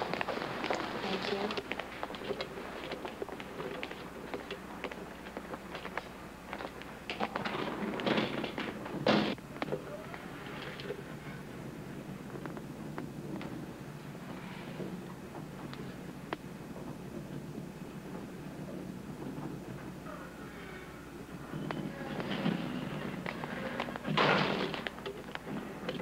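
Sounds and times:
footsteps: 0.0s - 9.8s.

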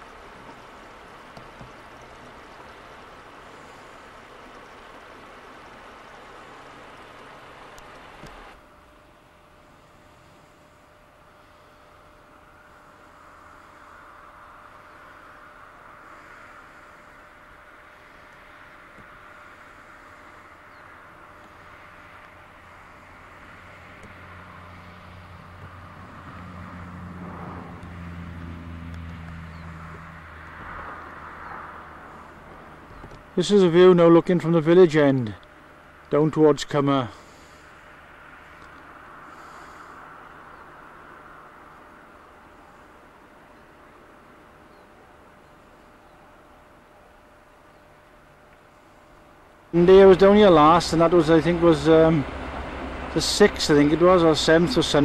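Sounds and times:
low engine drone: 0.0s - 55.0s
outdoor background noise: 0.0s - 55.0s.

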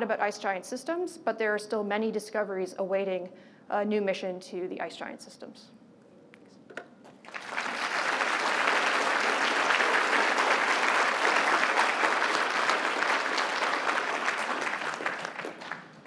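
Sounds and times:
audience applauding: 7.2s - 16.0s.

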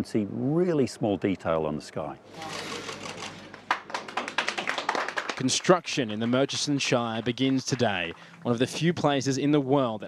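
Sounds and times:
crowd applauding: 2.9s - 8.6s.

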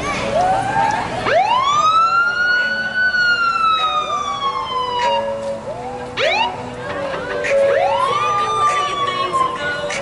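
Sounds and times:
emergency vehicle siren wailing: 0.3s - 10.0s.

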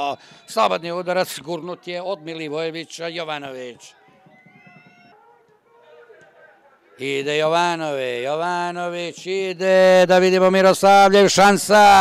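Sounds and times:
distant shouting and chatter: 0.0s - 8.1s.

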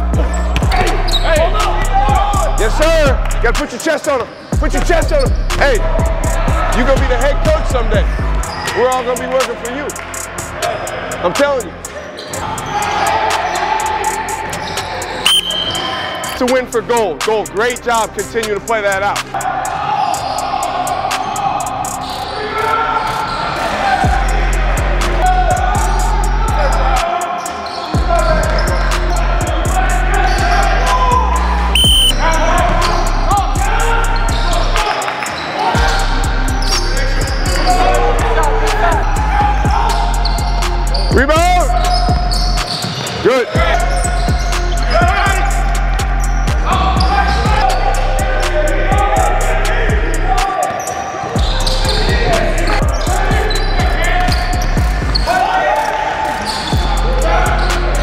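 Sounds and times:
music with steady bass: 0.0s - 3.7s, 4.6s - 10.6s, 24.0s - 27.1s, 28.0s - 34.8s, 35.8s - 42.6s, 43.6s - 50.5s, 51.4s - 55.2s, 56.8s - 58.0s
players' voices: 0.0s - 58.0s
sneaker squeaks: 0.2s - 1.9s, 4.0s - 5.6s, 11.9s - 13.6s, 14.5s - 16.4s, 27.4s - 29.2s, 31.7s - 33.2s, 34.1s - 35.7s, 40.2s - 45.1s, 46.2s - 47.8s, 50.6s - 56.9s.

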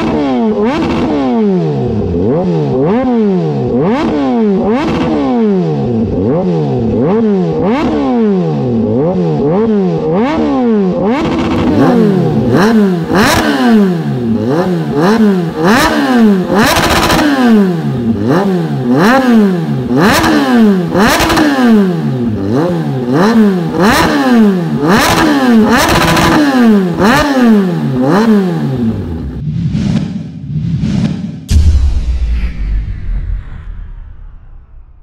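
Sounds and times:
motorcycle engine revving: 0.0s - 31.6s.

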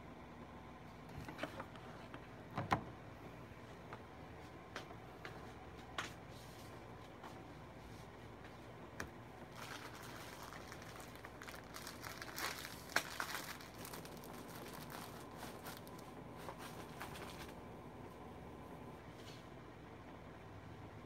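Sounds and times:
faint crinkling and rustling: 4.8s - 18.2s.

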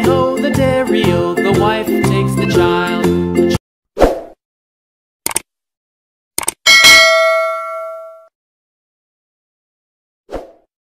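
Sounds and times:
bell chime: 6.7s - 8.3s.

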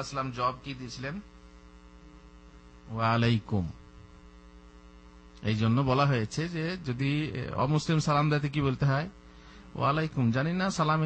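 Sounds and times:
electrical mains hum: 0.0s - 11.0s
man's voice: 5.4s - 9.2s.

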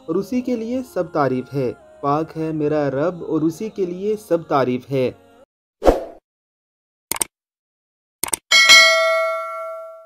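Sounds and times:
mouse double-click: 7.1s - 7.3s, 8.2s - 8.4s
bright bell ding: 8.5s - 10.0s.

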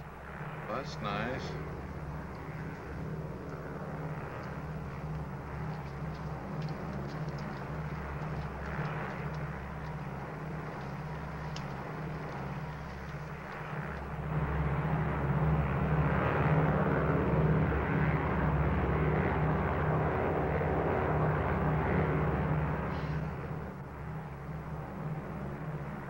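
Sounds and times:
propeller airliner engines droning: 0.0s - 26.0s.

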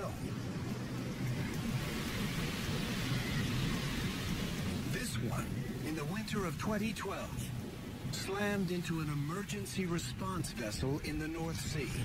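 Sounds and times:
wind rushing: 0.0s - 12.0s.

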